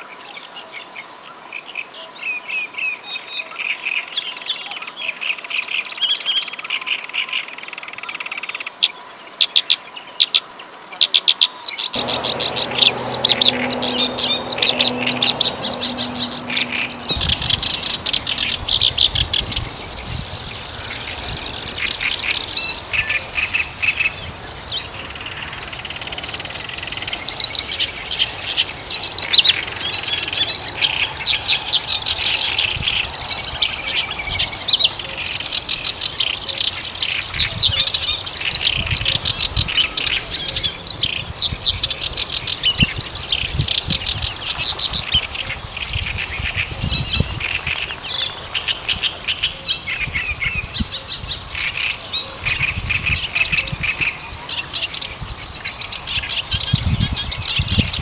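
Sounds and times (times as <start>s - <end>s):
reed warbler singing: 0.0s - 58.0s.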